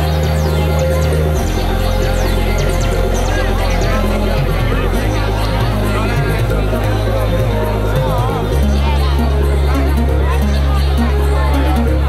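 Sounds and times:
electronic music with deep bass: 0.0 - 12.0.

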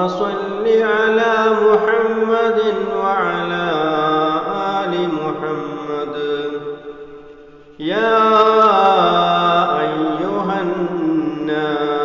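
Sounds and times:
man chanting prayer: 0.0 - 7.0, 7.8 - 12.0.

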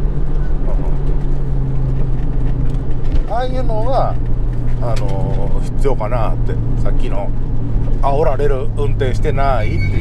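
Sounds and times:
car engine running: 0.0 - 10.0
road and tyre noise: 0.0 - 10.0.

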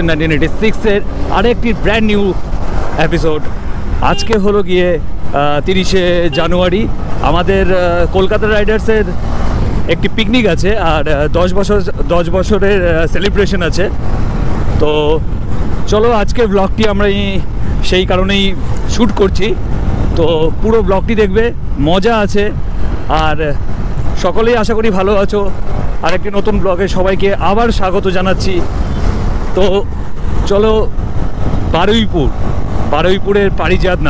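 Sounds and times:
motorcycle engine rumbling: 0.0 - 34.0
wind rushing over microphone: 0.0 - 34.0
wind on microphone: 28.2 - 34.0.

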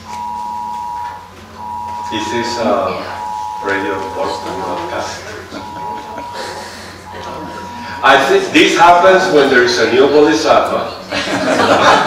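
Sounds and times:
two-tone electronic beeps: 0.0 - 9.4.

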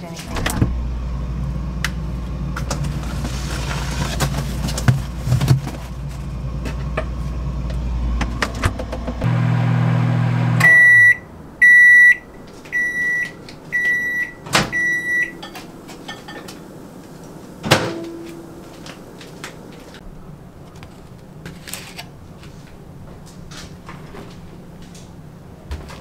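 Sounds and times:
microwave oven humming: 0.4 - 20.0
microwave beeping: 9.3 - 16.5, 17.6 - 18.8.

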